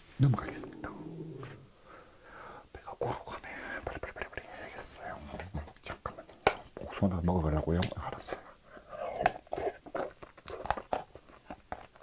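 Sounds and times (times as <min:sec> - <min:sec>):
person chewing fruit crunching: 0:09.0 - 0:12.0.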